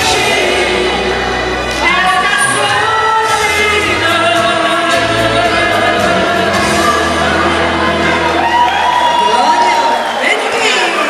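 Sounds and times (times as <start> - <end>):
woman singing into a microphone: 0.0 - 8.7
amplified instrumental accompaniment: 0.0 - 11.0.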